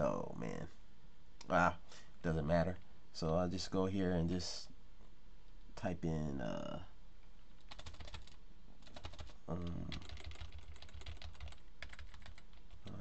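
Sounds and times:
keyboard typing clicks: 7.6s - 13.0s.

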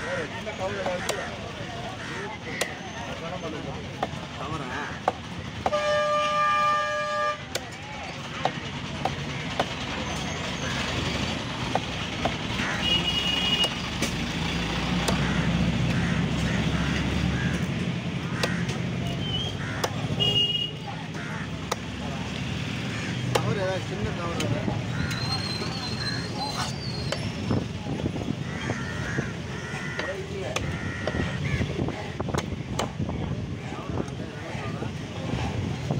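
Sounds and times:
engine rumble: 0.0s - 35.9s
market voices: 0.0s - 35.9s
vehicle horn: 5.7s - 7.6s, 12.8s - 13.8s, 20.1s - 20.8s
cleaver chopping on wooden block: 14.9s - 15.3s, 18.3s - 18.8s, 19.8s - 20.2s, 23.2s - 23.6s, 32.3s - 33.0s.

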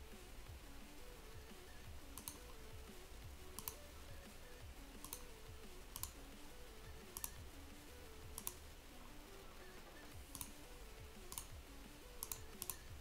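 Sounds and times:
computer mouse clicking: 1.7s - 2.7s, 3.5s - 3.9s, 5.0s - 6.2s, 7.0s - 7.4s, 8.3s - 8.6s, 10.2s - 13.0s.

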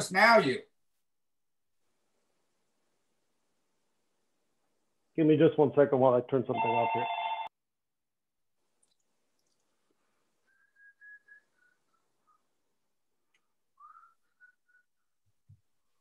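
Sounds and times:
electronic phone ring: 6.6s - 7.5s
short whistled notes: 10.5s - 12.4s, 13.8s - 15.2s.

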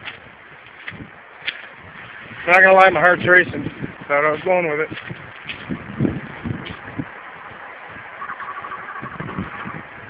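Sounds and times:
footsteps on gravel: 0.0s - 7.0s
steady outdoor hiss: 0.0s - 10.0s.

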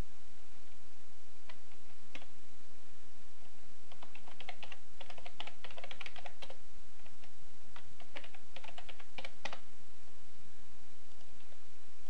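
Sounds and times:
computer keyboard typing: 1.5s - 2.3s, 3.9s - 9.6s.

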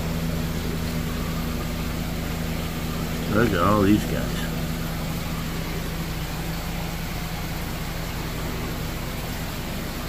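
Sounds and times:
aquarium pumps humming: 0.0s - 10.0s
low steady hum tones: 0.0s - 10.0s.

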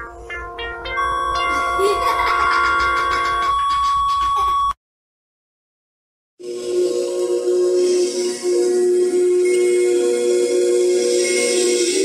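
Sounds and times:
bell-like synthesized jingle chord: 0.0s - 4.6s.

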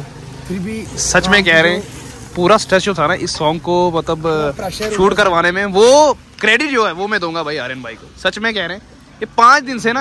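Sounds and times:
man talking: 0.4s - 10.0s.

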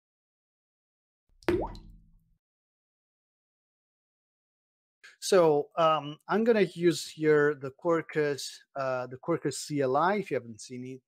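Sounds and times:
logo pop with rising pitch: 1.4s - 2.1s.

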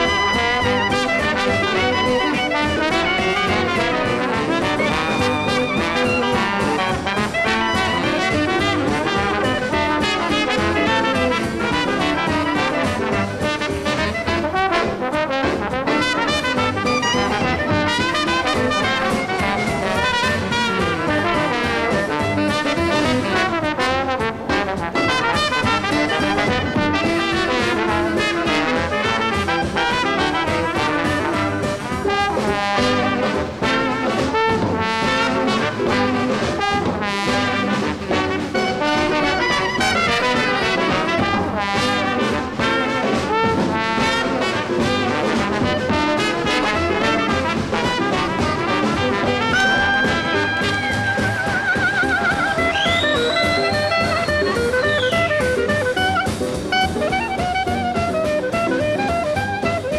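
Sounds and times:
dixieland jazz band playing: 0.0s - 59.9s.

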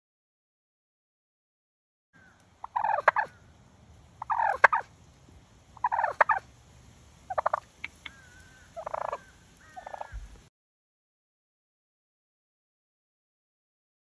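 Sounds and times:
turkey gobbling: 2.2s - 3.4s, 4.2s - 4.9s, 5.8s - 6.5s, 7.3s - 10.4s.

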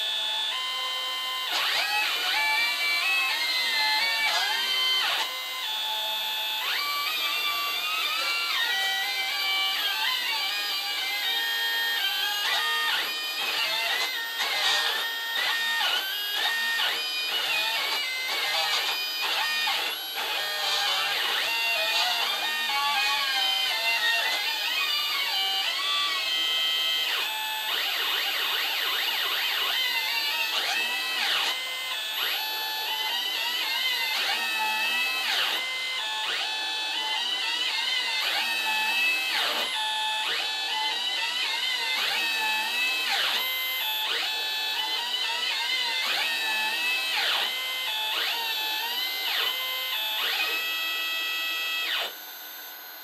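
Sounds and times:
stepper motors playing a melody: 0.1s - 52.9s.

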